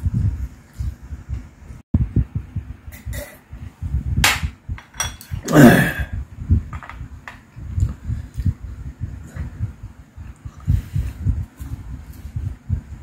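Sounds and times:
glass and tableware clicks: 4.3s - 5.4s.

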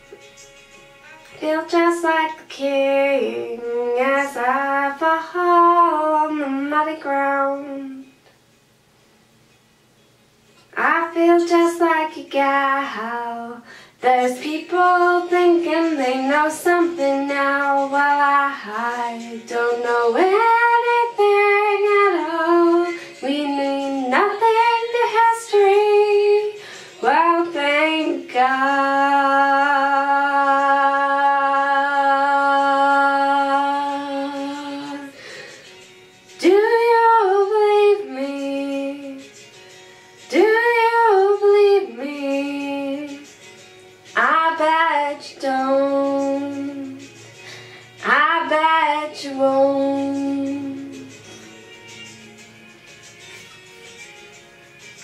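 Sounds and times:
woman singing wordless phrases: 1.0s - 8.1s, 10.7s - 35.2s, 36.4s - 39.3s, 40.2s - 43.4s, 44.1s - 47.2s, 48.0s - 51.2s.

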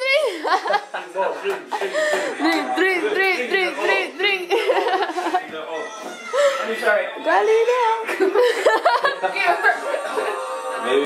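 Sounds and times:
people laughing: 0.1s - 2.8s, 4.3s - 5.8s, 8.0s - 11.0s.

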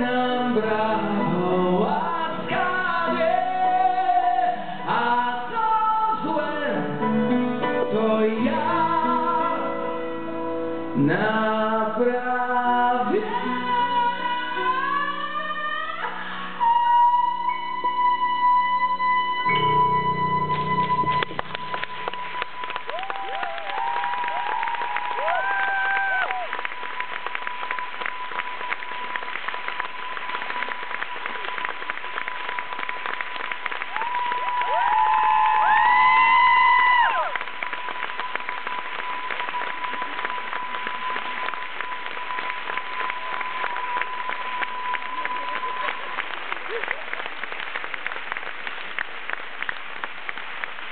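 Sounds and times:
audience applauding and cheering: 19.5s - 50.9s.

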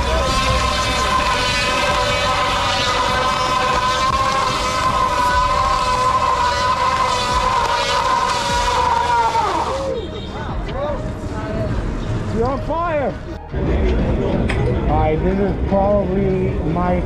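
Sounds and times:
tyre spinning high whine: 0.0s - 10.0s.

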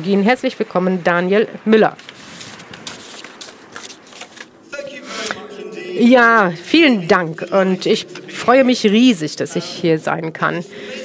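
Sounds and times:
paper rustling: 2.0s - 5.4s.

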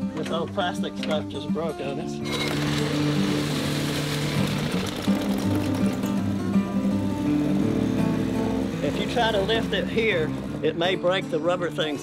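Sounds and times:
background music: 0.0s - 12.0s
outboard motor running: 2.3s - 10.7s.

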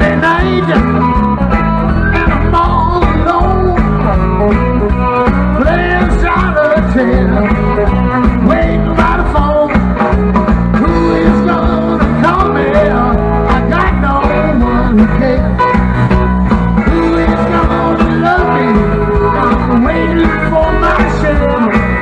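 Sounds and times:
electric guitars bending notes: 0.0s - 22.0s
live blues rock band: 0.0s - 22.0s.

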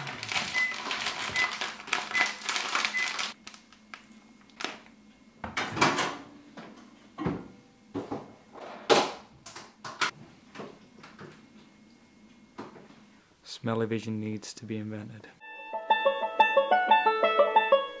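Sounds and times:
plastic pouch crinkling: 0.0s - 4.9s
kitchen knocks and clunks: 5.4s - 11.4s.

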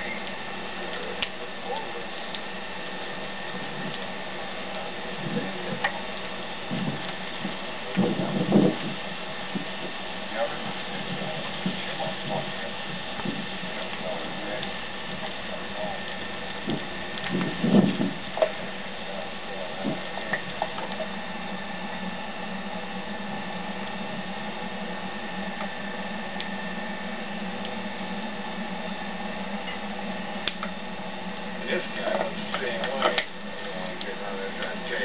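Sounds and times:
faint voices: 0.0s - 24.8s, 31.5s - 35.0s
background hiss and hum: 0.0s - 35.0s.

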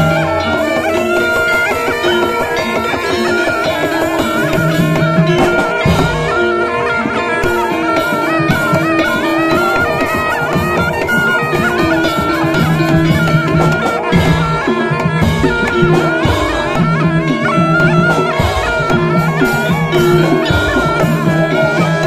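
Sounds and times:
drums: 0.0s - 22.0s
shawm playing a winding melody: 0.0s - 22.0s.

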